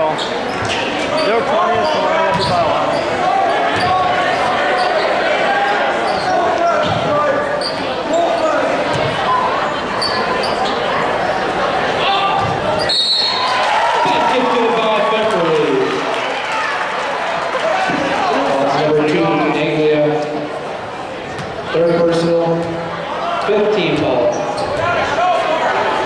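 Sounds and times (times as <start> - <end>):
crowd chatter: 0.0 - 26.0
referee's whistle: 12.8 - 13.6.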